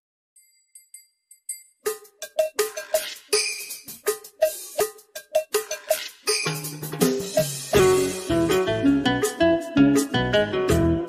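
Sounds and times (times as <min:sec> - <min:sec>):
knocking percussion pattern: 0:01.5 - 0:08.6.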